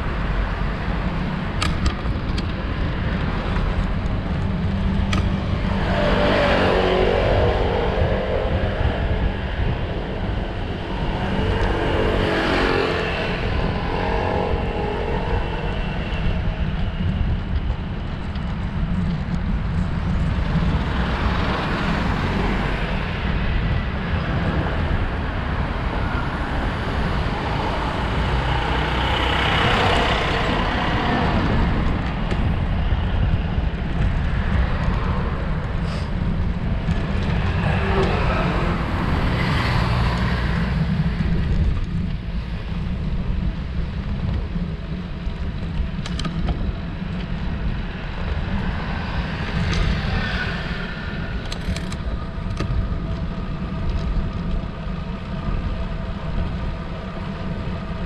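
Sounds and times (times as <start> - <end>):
motor vehicles passing: 0.0 - 58.0
wind rumble on microphone: 0.0 - 58.0.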